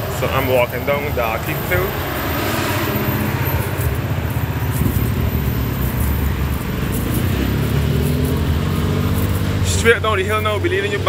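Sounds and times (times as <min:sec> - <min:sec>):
car engines running: 0:00.0 - 0:11.0.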